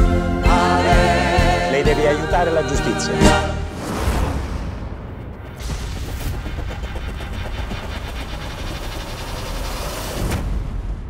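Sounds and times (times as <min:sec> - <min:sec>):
rumbling cinematic swell: 0:03.4 - 0:11.0.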